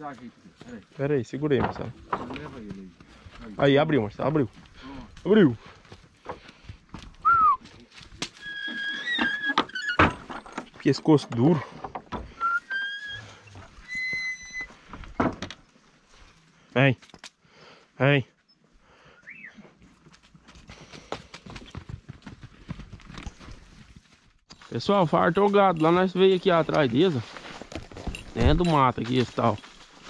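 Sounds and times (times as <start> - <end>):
cattle hooves on sandy ground: 0.0 - 9.5, 19.7 - 30.0
wooden gate knocking: 1.5 - 2.5
high whistle-like squeal: 12.4 - 14.7.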